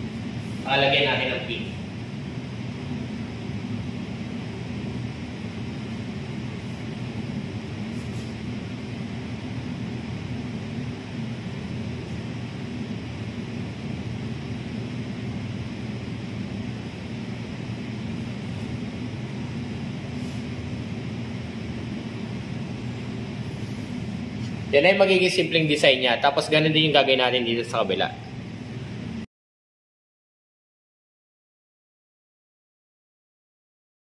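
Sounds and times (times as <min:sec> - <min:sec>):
steady low hum: 0:00.0 - 0:29.3.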